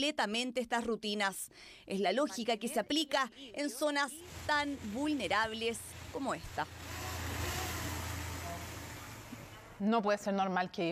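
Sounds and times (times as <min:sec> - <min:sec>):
hiss: 0:05.9 - 0:09.6.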